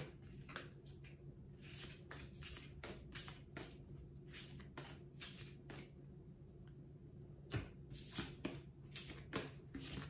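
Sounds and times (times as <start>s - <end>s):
cards swishing: 0.0s - 5.9s, 7.9s - 10.0s
low steady hum: 0.0s - 10.0s.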